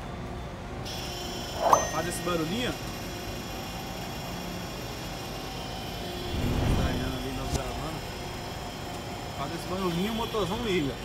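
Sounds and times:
refrigeration unit humming: 0.0s - 11.0s
engine low rumble: 6.0s - 10.4s.

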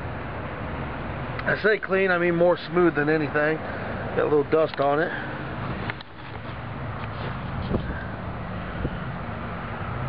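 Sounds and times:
truck engine idling: 1.9s - 9.5s
wind buffeting microphone: 5.6s - 9.4s.

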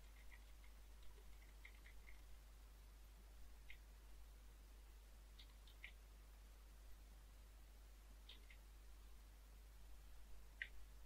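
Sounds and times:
keyboard keys typing: 0.0s - 2.3s, 5.3s - 6.0s, 8.2s - 8.6s
low steady hum: 0.0s - 11.0s.

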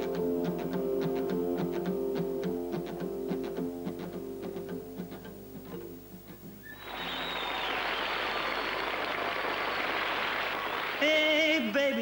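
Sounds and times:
audience applause: 6.6s - 11.7s.

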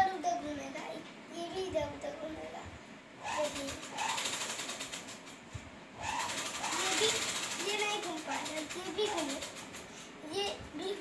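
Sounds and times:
child making wordless sounds: 0.0s - 3.9s, 6.6s - 11.0s
fast buzzing rattle: 3.2s - 10.1s.

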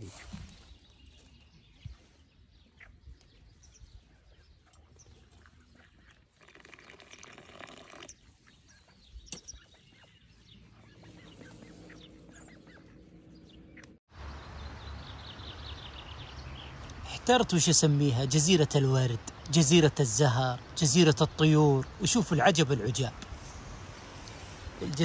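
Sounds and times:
faint bird calls: 2.6s - 14.0s
tea pouring into glass: 6.4s - 8.1s.

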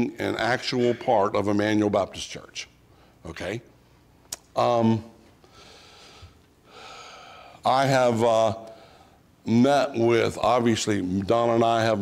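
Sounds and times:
man breathing: 5.4s - 7.6s.

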